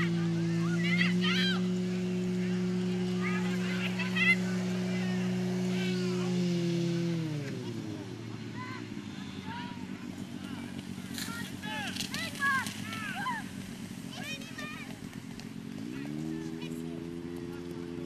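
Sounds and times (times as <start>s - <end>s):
people shouting: 0.0s - 6.5s, 8.5s - 15.0s
pump engine running: 0.0s - 18.0s.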